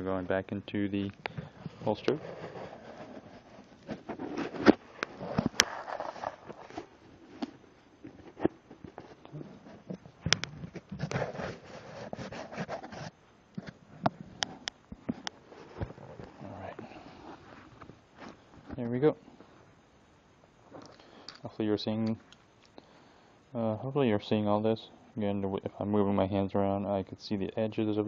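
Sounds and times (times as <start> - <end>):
scraping and rustling: 1.4 - 18.8.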